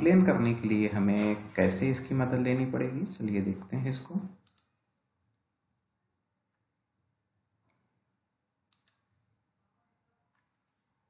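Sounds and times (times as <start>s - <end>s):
computer mouse double-click: 8.7s - 9.1s.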